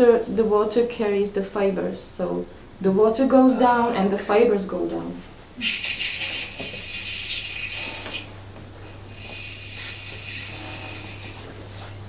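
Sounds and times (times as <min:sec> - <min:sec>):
low steady hum: 0:00.0 - 0:12.0
water draining with hiss: 0:05.6 - 0:08.3, 0:09.1 - 0:11.5.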